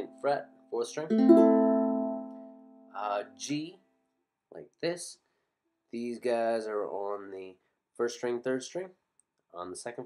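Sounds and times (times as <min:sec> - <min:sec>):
ukulele chord strummed: 0:01.0 - 0:03.0.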